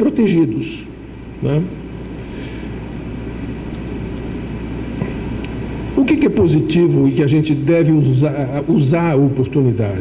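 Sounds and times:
room background rumble and hum: 0:00.0 - 0:10.0.

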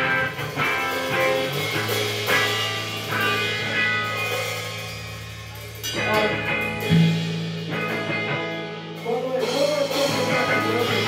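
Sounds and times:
drum and cymbal hit: 0:00.0 - 0:11.0
rock band playing: 0:00.0 - 0:11.0
guitar chord ringing: 0:05.0 - 0:08.8.

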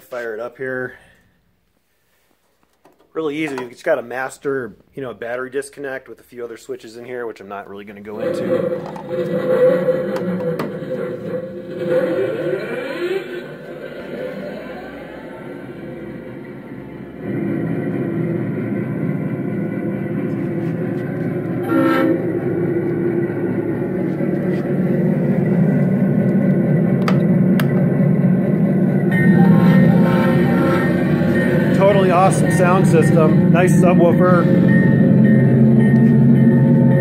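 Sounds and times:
simulated diesel engine: 0:08.2 - 0:37.0
rising whine: 0:08.4 - 0:37.0
locomotive horn blast: 0:19.8 - 0:26.4, 0:28.5 - 0:37.0.

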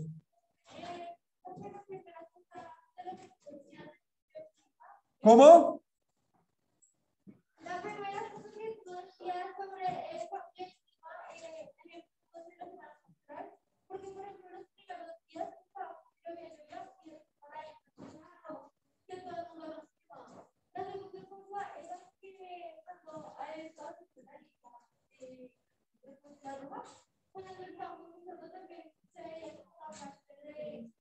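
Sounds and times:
child singing: 0:07.7 - 0:11.7.

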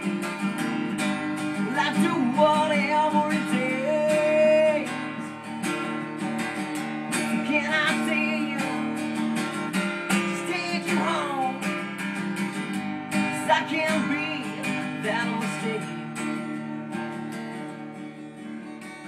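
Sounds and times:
acoustic guitar strummed and picked: 0:00.0 - 0:19.0.

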